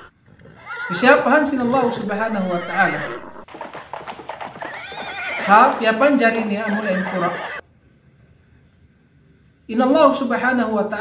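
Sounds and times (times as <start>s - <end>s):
horse hoofbeats galloping: 0.0s - 7.6s
horse neighing: 0.0s - 7.6s.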